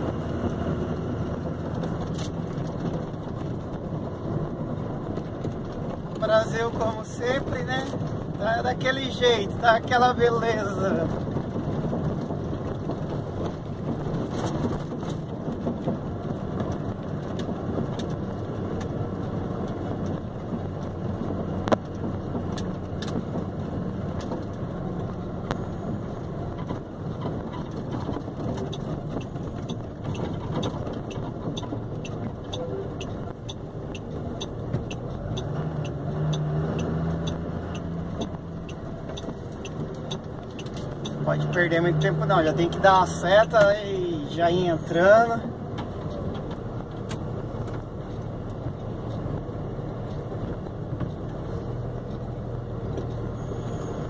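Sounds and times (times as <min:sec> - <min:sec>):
vehicle engine and road noise: 0:00.0 - 0:54.0
faint ticking: 0:28.5 - 0:42.2.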